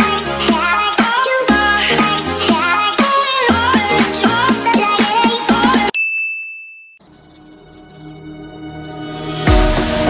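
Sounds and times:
background music with steady beat: 0.0s - 6.0s, 8.0s - 10.0s.

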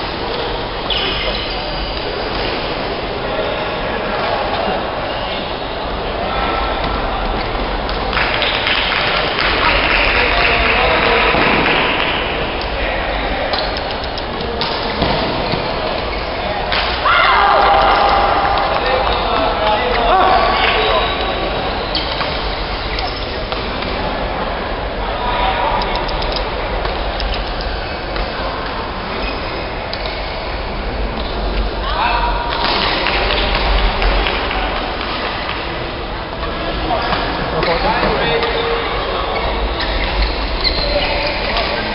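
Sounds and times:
many voices: 0.0s - 41.9s.

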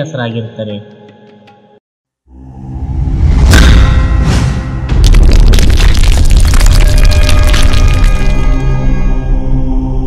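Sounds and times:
cinematic logo music: 2.3s - 10.0s
low rumble: 2.5s - 9.4s
deep boom: 3.0s - 8.8s
loud hit: 3.1s - 8.9s.

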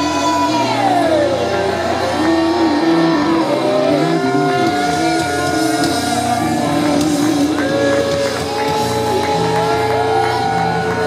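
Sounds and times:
bass guitar: 0.0s - 11.0s
electric guitar sliding notes: 0.0s - 11.0s.

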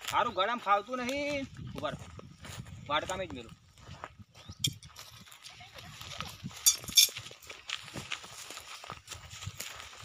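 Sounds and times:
footsteps on dry ground: 0.0s - 10.0s.

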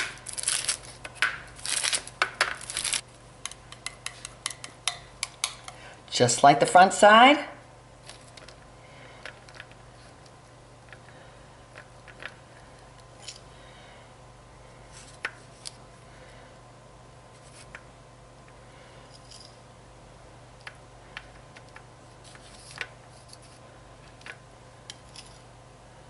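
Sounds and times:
faint steady hum: 0.0s - 26.0s
knife tapping and scraping bowl: 3.7s - 5.8s.

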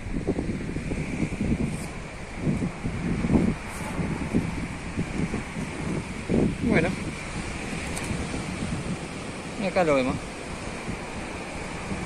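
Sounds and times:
ocean surf: 0.0s - 12.0s
wind buffeting microphone: 0.0s - 12.0s.

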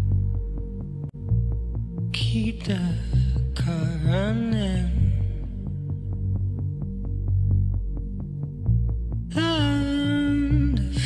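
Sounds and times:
deep bass notes: 0.0s - 11.0s.

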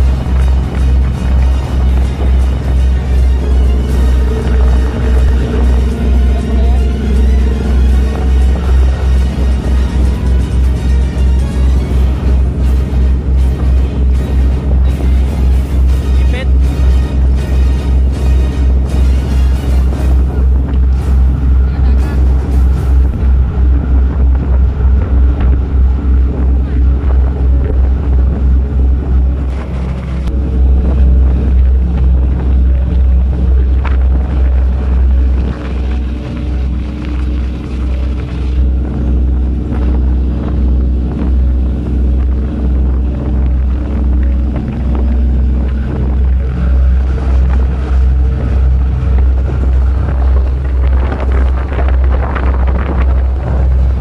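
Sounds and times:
ship engine throbbing: 0.0s - 54.0s
wind buffeting microphone: 0.0s - 54.0s.

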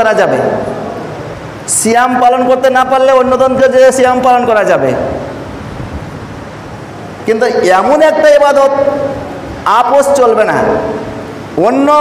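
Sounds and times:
steady background hiss: 0.0s - 12.0s
echo of man's voice: 1.7s - 5.3s, 7.3s - 12.0s.

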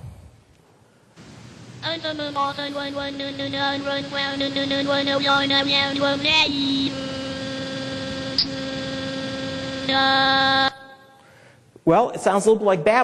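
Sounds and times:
long held synthesized drone: 1.2s - 11.2s
synthesized speech babbling: 1.8s - 7.6s.

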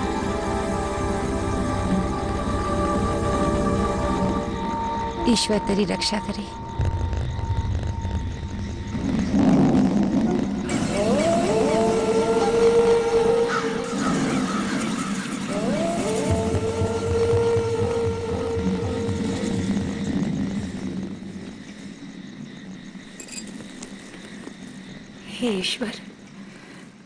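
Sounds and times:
dramatic background music: 0.0s - 9.4s, 10.1s - 21.3s
low drone: 0.0s - 25.2s.

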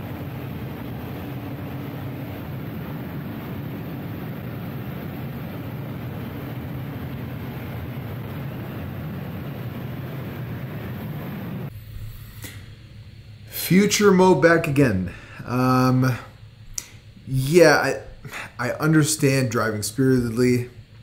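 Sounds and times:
car engine and road drone: 0.0s - 12.6s.

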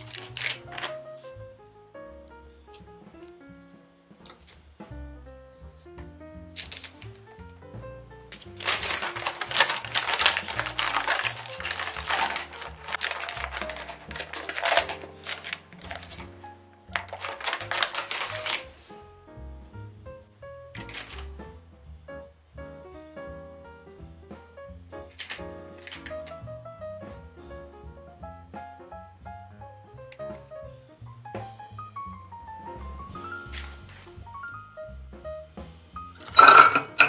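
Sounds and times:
baking parchment crinkling: 0.0s - 1.4s, 4.2s - 4.6s, 6.5s - 19.0s, 20.8s - 21.6s, 25.0s - 26.6s, 33.1s - 34.3s, 36.2s - 37.0s
gentle background music: 0.0s - 37.0s.

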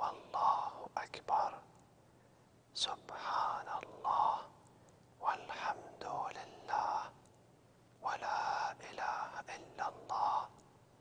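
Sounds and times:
man whispering: 0.0s - 1.8s, 2.7s - 4.6s, 5.2s - 7.2s, 8.0s - 10.6s.

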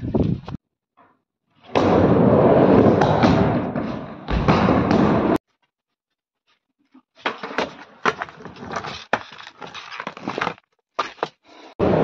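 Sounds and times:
skateboard wheels rolling on wood: 1.6s - 5.4s, 7.2s - 12.0s
skateboard heavy thump: 1.7s - 5.4s.

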